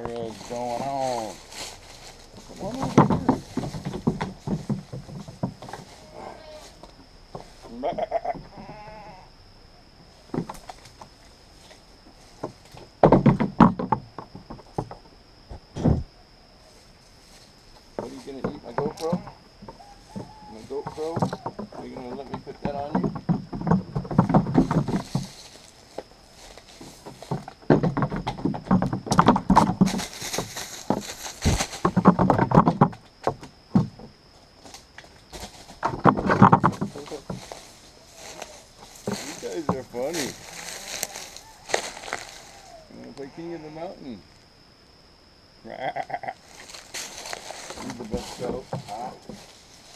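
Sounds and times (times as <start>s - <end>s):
hooves clattering on wooden deck: 0.0s - 7.7s, 10.3s - 11.1s, 12.3s - 16.0s, 18.0s - 42.8s, 46.5s - 49.9s
goats bleating: 6.0s - 6.8s, 7.7s - 9.3s, 45.7s - 46.5s.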